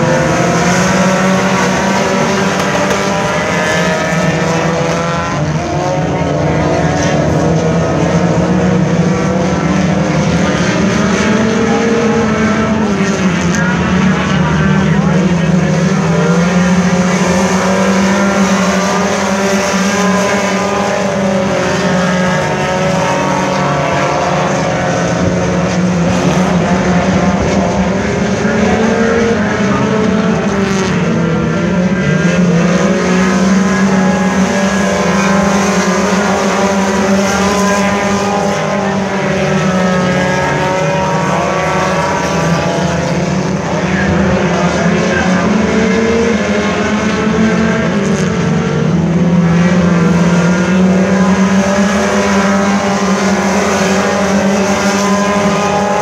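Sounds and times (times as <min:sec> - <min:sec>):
race car engines: 0:00.0 - 0:56.0.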